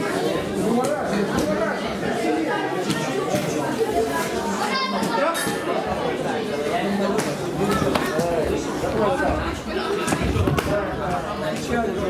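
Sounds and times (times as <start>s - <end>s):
spectators chattering and calling: 0.0s - 12.0s.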